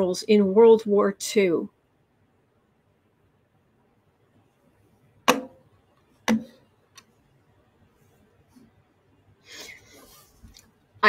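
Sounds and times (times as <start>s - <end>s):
sharp knock: 5.3s - 5.6s.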